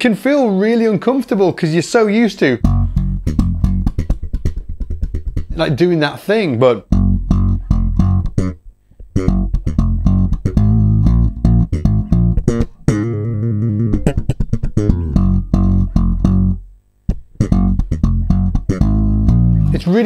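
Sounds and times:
slap bass guitar riff: 2.6 - 5.9, 6.8 - 20.0.

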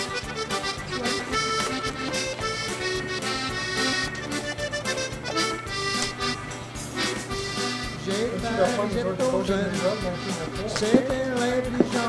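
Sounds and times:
accordion music with beat: 0.0 - 12.0.

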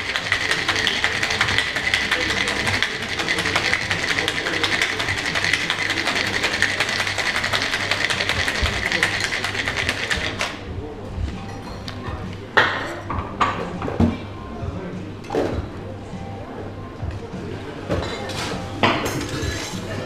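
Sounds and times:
ice rattling in cocktail shaker: 0.0 - 10.6.

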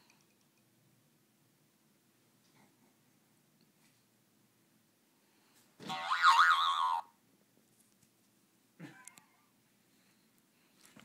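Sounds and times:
springy boing: 5.8 - 7.1.

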